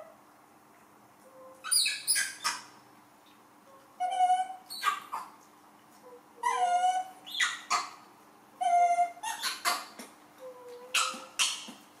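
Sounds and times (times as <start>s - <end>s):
young monkey whining calls: 6.2s - 8.0s.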